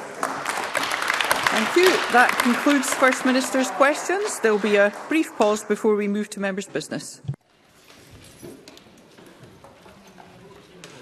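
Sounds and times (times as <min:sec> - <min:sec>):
murmur of people talking: 0:01.4 - 0:11.0.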